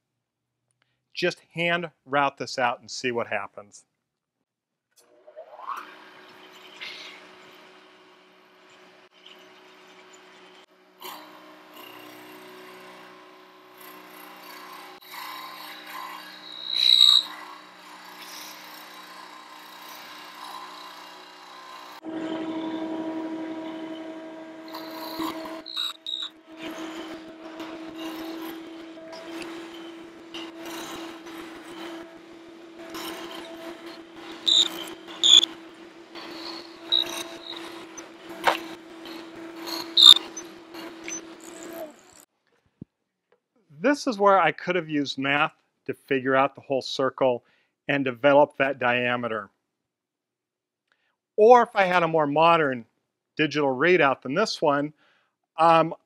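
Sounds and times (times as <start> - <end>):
milling machine motor hum: 6.0 - 42.2.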